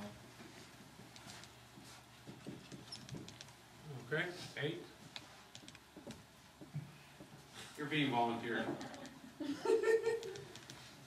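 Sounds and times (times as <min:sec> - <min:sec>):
marker squeaking on whiteboard: 0:02.4 - 0:03.6, 0:10.2 - 0:11.0.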